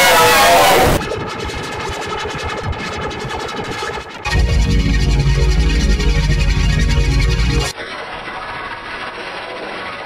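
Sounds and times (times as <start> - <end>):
harsh distorted noise: 0.0 - 8.1.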